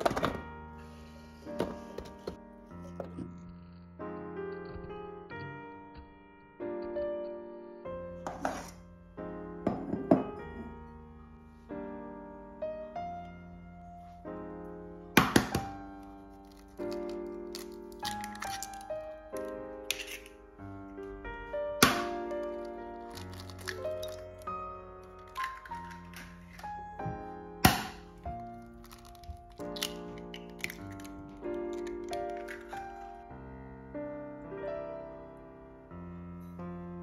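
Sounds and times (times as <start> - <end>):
soft piano music: 0.0 - 37.0
eggshells cracked against glass bowl: 16.4 - 20.4, 21.8 - 26.7, 28.8 - 33.0.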